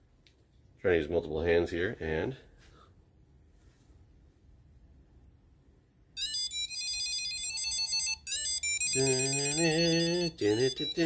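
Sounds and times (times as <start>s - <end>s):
electronic beeping melody: 6.2s - 11.0s.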